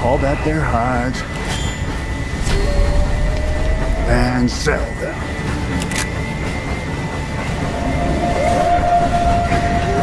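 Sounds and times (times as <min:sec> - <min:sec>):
steady high drone tone: 0:00.0 - 0:10.0.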